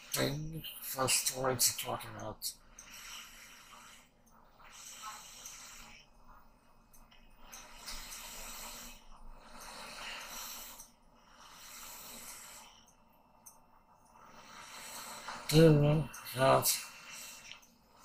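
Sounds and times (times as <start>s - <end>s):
person breathing heavily: 2.6s - 6.2s, 7.5s - 12.9s, 14.2s - 18.0s.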